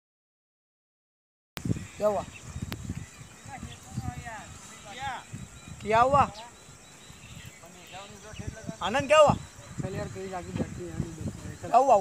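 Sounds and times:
man speaking: 0:03.5 - 0:06.6, 0:07.6 - 0:12.0.

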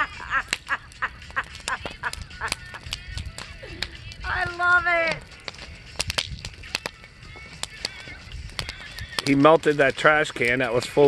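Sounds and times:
people laughing: 0:00.0 - 0:02.9
bonfire crackling and popping: 0:00.0 - 0:11.0.

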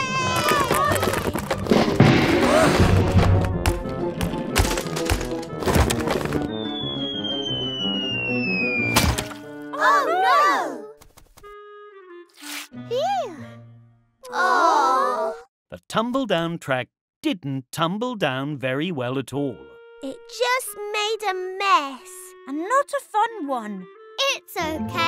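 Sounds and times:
background music: 0:00.0 - 0:14.7, 0:18.6 - 0:25.0
cartoon falling whistle: 0:06.5 - 0:09.2
cartoon impact: 0:08.7 - 0:09.5.

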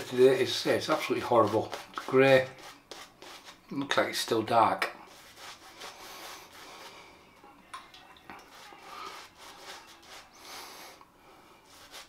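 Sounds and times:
shaving brush rubbing lather: 0:00.2 - 0:03.6, 0:05.1 - 0:07.0, 0:08.4 - 0:10.8, 0:11.7 - 0:12.0.

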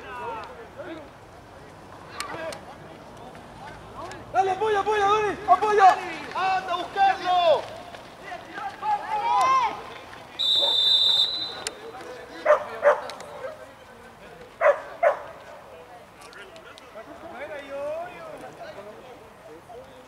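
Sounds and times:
players shouting: 0:03.8 - 0:13.6
referee's whistle blast: 0:10.4 - 0:11.8
short sharp calls: 0:10.4 - 0:11.9.

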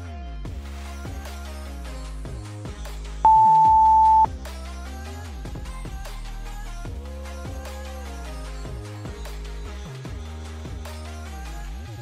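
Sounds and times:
electronic background music: 0:00.5 - 0:05.3
loud electronic timer beep: 0:03.3 - 0:04.3.

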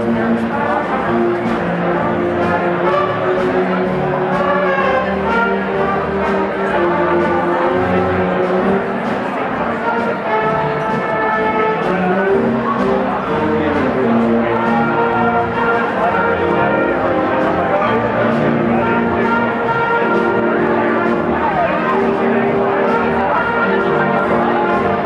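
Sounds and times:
brass sustained chords: 0:00.0 - 0:25.0
jazz big band playing: 0:00.0 - 0:25.0.

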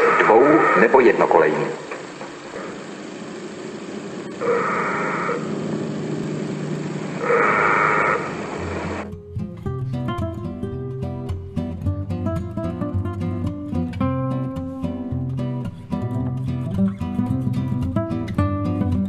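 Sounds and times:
old film soundtrack hiss: 0:00.0 - 0:09.0
acoustic guitar music: 0:04.2 - 0:19.0
crossing warning horn blasts: 0:04.4 - 0:05.6, 0:07.2 - 0:09.0.

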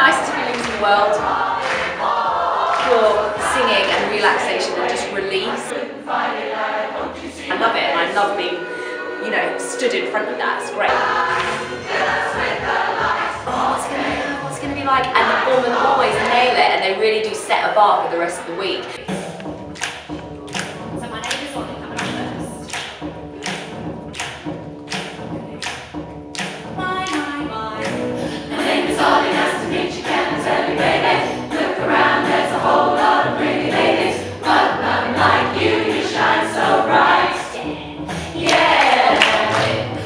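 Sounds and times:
choir singing: 0:00.0 - 0:17.0, 0:27.1 - 0:40.0.

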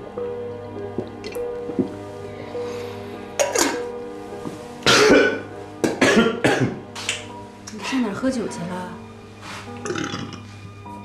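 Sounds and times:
soft background music: 0:00.0 - 0:11.0
man gulping a drink: 0:00.8 - 0:02.0.

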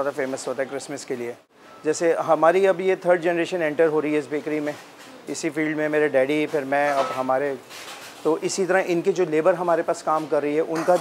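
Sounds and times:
man speaking: 0:00.0 - 0:07.6, 0:08.3 - 0:11.0.

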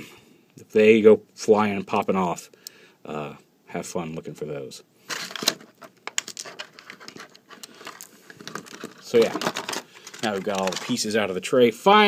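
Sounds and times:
plastic blister tray crackling: 0:05.2 - 0:11.1.

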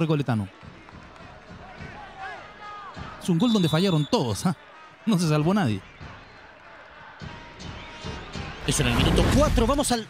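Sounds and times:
faint stadium ambience: 0:00.0 - 0:10.0.

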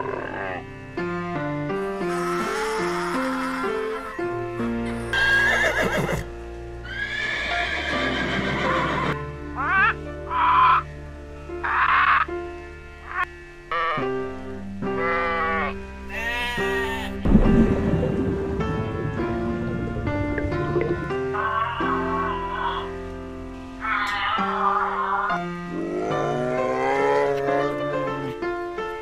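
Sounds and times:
light background music: 0:00.0 - 0:29.0
donkey braying: 0:05.1 - 0:10.9, 0:13.1 - 0:14.0, 0:15.0 - 0:17.2, 0:21.3 - 0:23.0, 0:23.8 - 0:27.8
macaw squawks: 0:11.6 - 0:12.3.

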